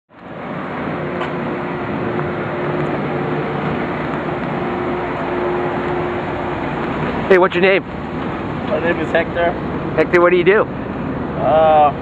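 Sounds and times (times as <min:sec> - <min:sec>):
forklift engine running: 0:00.2 - 0:10.0.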